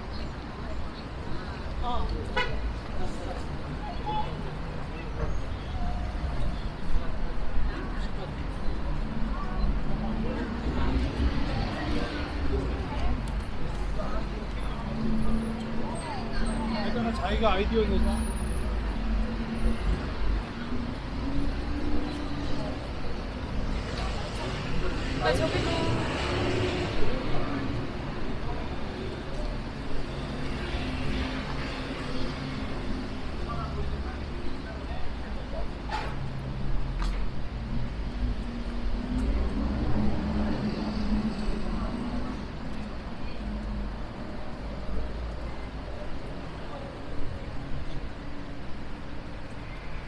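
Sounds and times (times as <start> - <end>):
passersby's voices: 0.0 - 50.0
road traffic: 0.0 - 50.0.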